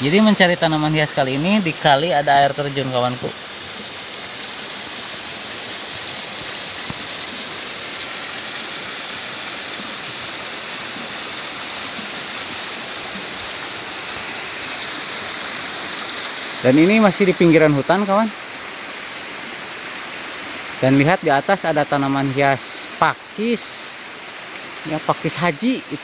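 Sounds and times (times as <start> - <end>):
river flowing: 0.0 - 26.0
small waterfall splashing: 0.0 - 26.0.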